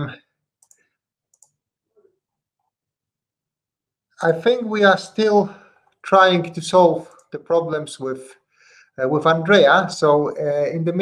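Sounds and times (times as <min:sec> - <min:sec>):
faint short clicks: 0:00.6 - 0:01.6.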